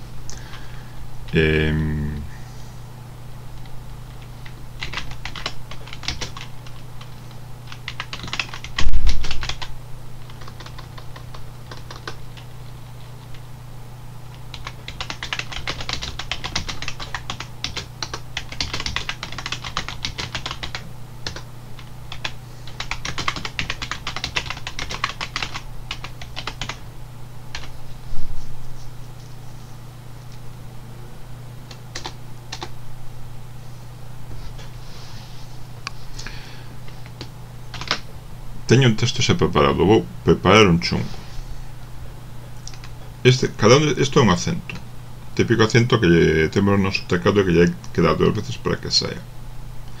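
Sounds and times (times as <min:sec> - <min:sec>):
steady low hum: 0:00.0 - 0:50.0
typing on computer keyboard: 0:04.8 - 0:06.8, 0:07.7 - 0:12.4, 0:14.5 - 0:21.4, 0:22.1 - 0:26.8, 0:31.9 - 0:32.7, 0:37.7 - 0:38.0.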